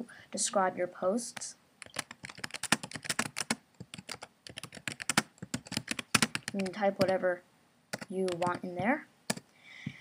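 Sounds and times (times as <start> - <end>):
keyboard key clicks: 1.8 - 7.2, 8.0 - 8.6.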